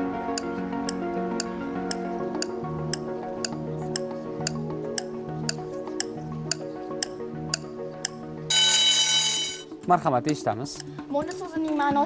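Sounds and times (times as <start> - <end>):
ticking timer music: 0.3 - 12.0
bright signal tone: 8.5 - 9.7.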